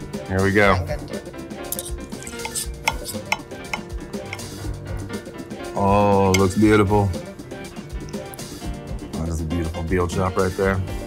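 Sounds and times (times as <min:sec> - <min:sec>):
cutlery scraping ceramic plate: 0:01.7 - 0:04.6.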